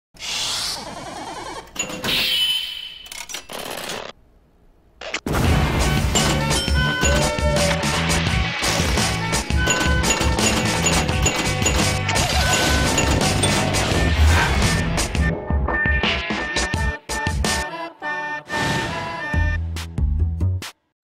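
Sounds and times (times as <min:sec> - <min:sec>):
intro music with rhythmic bass: 0:19.5 - 0:20.7.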